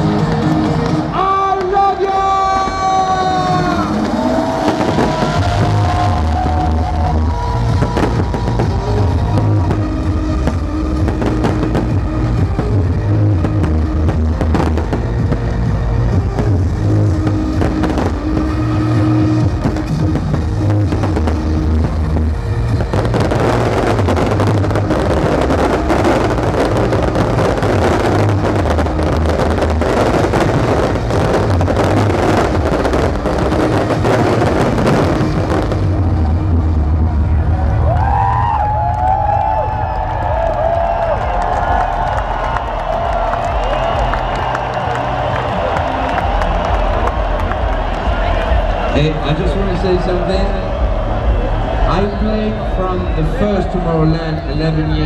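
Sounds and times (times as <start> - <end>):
fireworks banging: 0.0 - 37.2
electronic dance music: 0.0 - 37.9, 41.0 - 55.0
crackling fireworks: 0.0 - 55.0.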